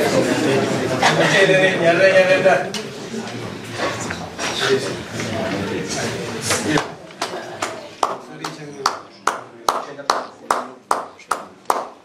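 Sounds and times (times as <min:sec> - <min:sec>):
slow hand claps: 0:06.8 - 0:12.0.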